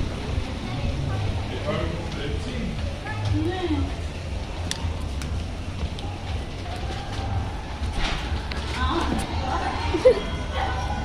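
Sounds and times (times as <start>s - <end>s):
low steady microphone rumble: 0.0s - 11.0s
footsteps on stone paving: 4.4s - 9.4s.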